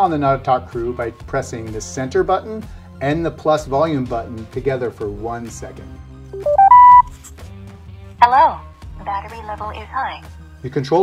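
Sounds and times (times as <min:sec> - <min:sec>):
rising electronic beeps: 0:06.4 - 0:07.1.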